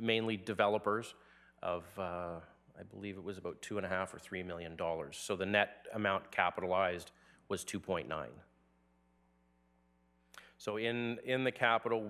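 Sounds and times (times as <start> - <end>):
person speaking: 0.0 - 8.5.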